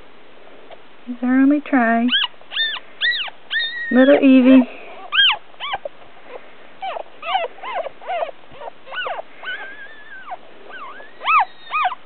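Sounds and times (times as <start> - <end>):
puppy squealing: 2.1 - 5.9, 6.8 - 12.0.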